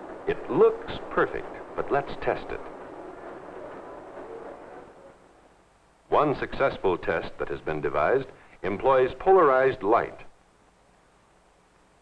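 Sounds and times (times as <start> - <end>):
faint film soundtrack hiss: 0.0 - 12.0.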